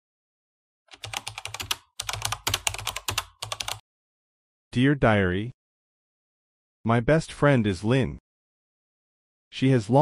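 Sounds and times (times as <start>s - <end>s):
computer keyboard typing: 0.9s - 3.8s.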